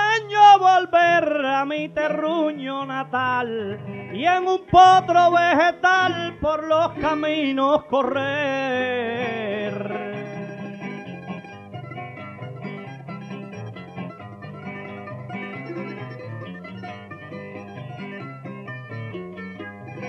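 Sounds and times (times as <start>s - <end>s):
guitar and lute strumming: 0.0s - 20.0s.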